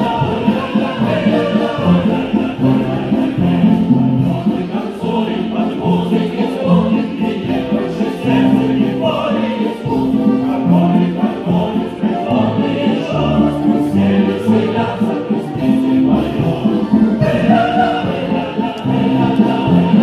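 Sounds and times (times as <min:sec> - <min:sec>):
choir singing held notes: 0:00.0 - 0:20.0
folk dance music: 0:00.0 - 0:20.0.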